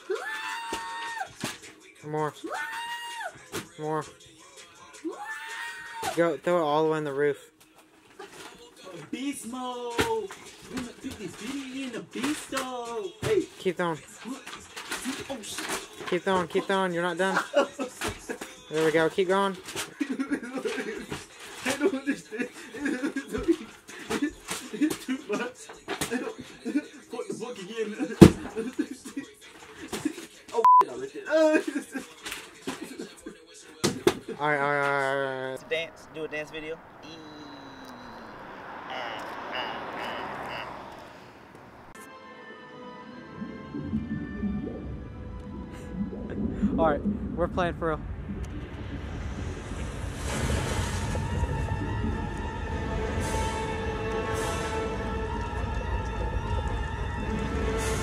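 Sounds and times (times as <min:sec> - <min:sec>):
people talking: 0:15.0 - 0:17.7, 0:18.7 - 0:19.6, 0:34.3 - 0:40.8, 0:46.8 - 0:48.0
people chuckling: 0:16.4 - 0:18.6, 0:19.8 - 0:30.4, 0:31.2 - 0:35.6, 0:37.5 - 0:40.8.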